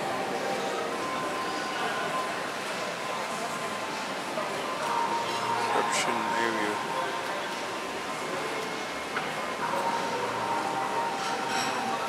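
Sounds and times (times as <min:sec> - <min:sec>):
murmur of people: 0:00.0 - 0:12.0.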